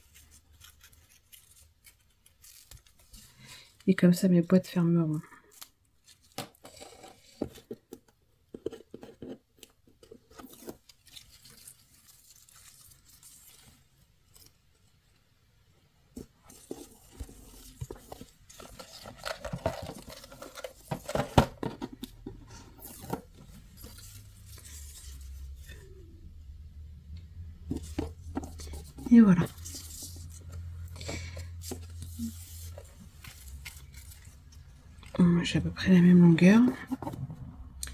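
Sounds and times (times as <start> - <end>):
ribbon rustling and scraping: 0.0 - 4.5, 5.2 - 15.2, 16.1 - 26.0, 27.7 - 35.5.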